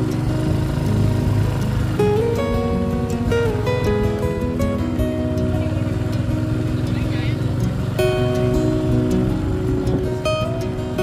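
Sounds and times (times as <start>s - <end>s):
background music with held notes: 0.0s - 11.0s
motorbike rumble: 0.0s - 11.0s.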